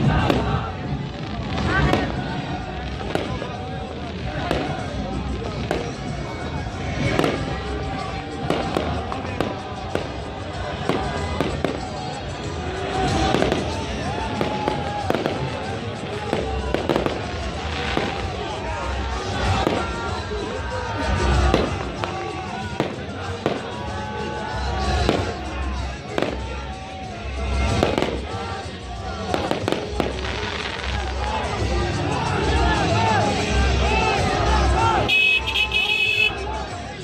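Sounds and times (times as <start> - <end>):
fireworks bursting: 0.0 - 6.3, 7.0 - 12.2, 12.8 - 20.2, 21.2 - 23.8, 27.5 - 32.2
crowd voices: 0.0 - 37.0.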